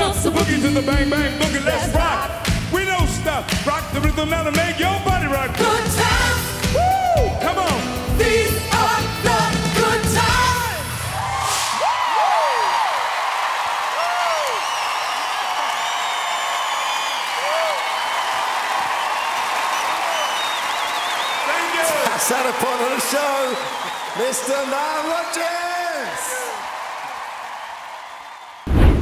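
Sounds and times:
funk band with singers: 0.0 - 11.2
audience clapping and cheering: 0.0 - 29.0
whoops: 6.7 - 7.5, 11.1 - 21.5, 25.9 - 28.7.

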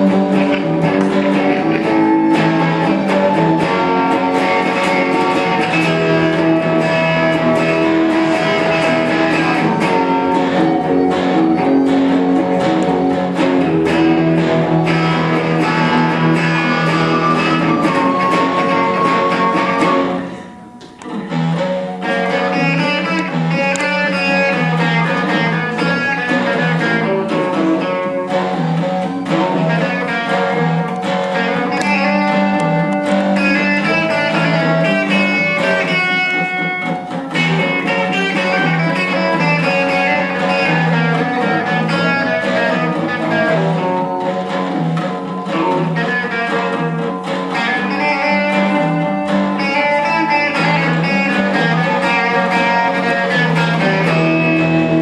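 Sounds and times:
amplified acoustic guitar: 0.0 - 55.0
electric guitar: 0.0 - 55.0.

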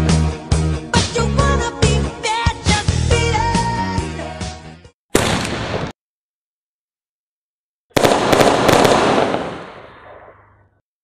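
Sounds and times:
firework bang with cracks: 5.1 - 5.9, 8.0 - 10.3.

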